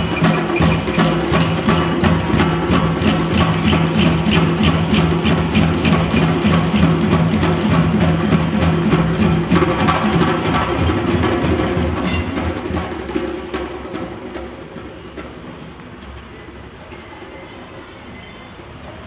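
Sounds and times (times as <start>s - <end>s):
djembe hand drums playing: 0.0s - 15.4s.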